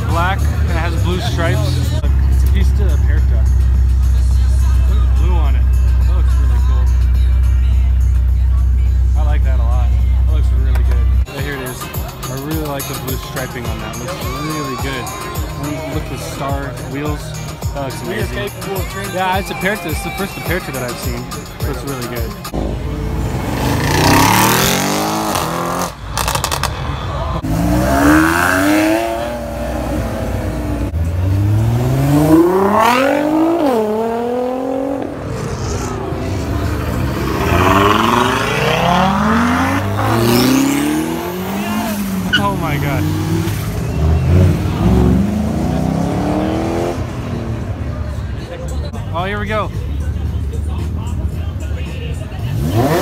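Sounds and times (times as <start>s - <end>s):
car engines accelerating hard: 0.0s - 8.3s, 8.9s - 53.0s.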